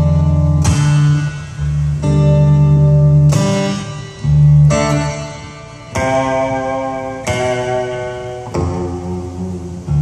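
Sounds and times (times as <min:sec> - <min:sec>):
acoustic guitar chords ringing: 0:00.0 - 0:10.0.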